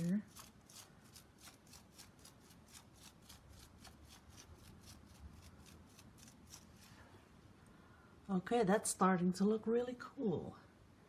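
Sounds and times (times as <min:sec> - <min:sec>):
paintbrush strokes on wet paint: 0:00.0 - 0:07.4.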